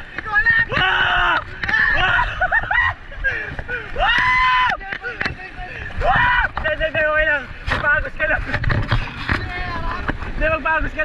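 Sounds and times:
people yelling and whooping: 0.3s - 7.4s.

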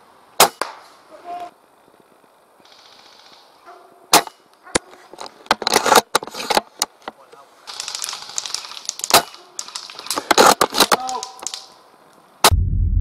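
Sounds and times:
airsoft rifle cracks: 7.7s - 11.8s.

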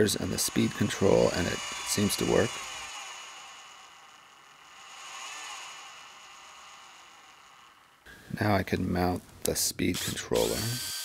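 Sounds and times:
small motor whining: 0.0s - 8.1s
steady hiss: 0.0s - 10.8s.

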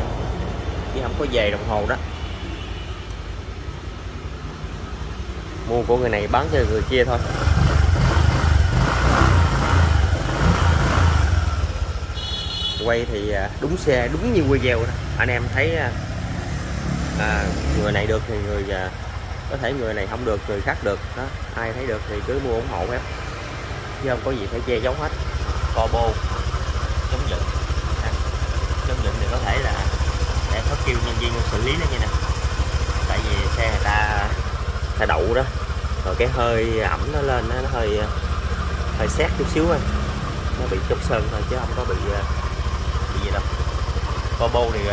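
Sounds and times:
scooter engine running: 4.0s - 44.9s.

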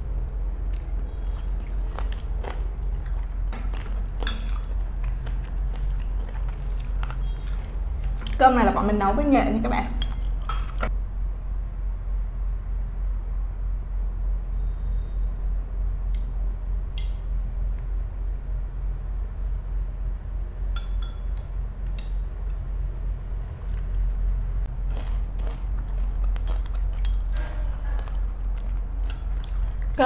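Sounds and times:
close chewing sounds: 0.0s - 9.1s, 9.8s - 10.9s, 24.7s - 30.0s
steady low hum: 0.0s - 30.0s
spoon and chopsticks clinking bowl: 3.7s - 4.8s, 20.8s - 22.6s.

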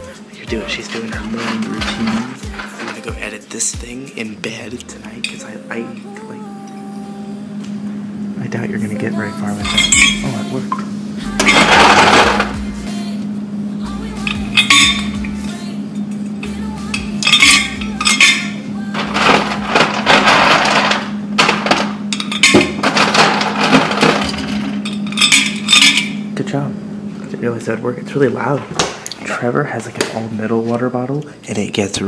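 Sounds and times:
ice cubes clattering in metal bottle: 0.6s - 3.4s, 11.4s - 12.5s, 17.2s - 26.1s.

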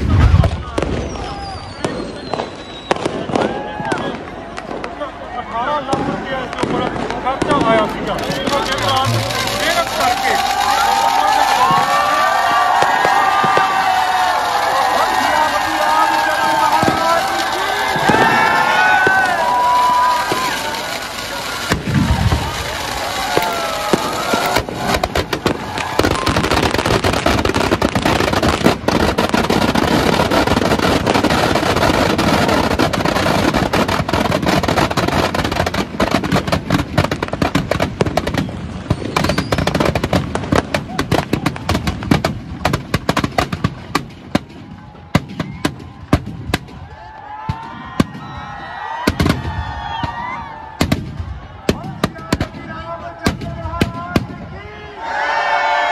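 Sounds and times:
firecrackers crackling: 0.0s - 54.7s.

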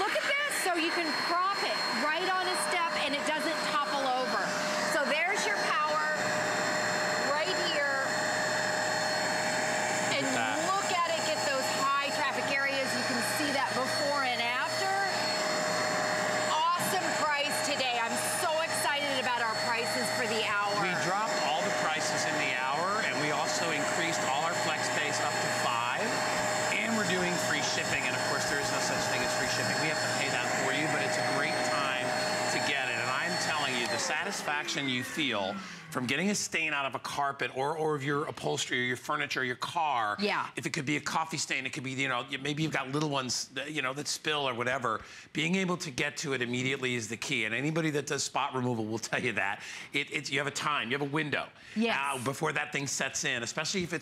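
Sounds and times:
carpet cleaner motor whine: 0.0s - 35.9s
voices talking: 16.3s - 36.4s, 51.8s - 52.6s.

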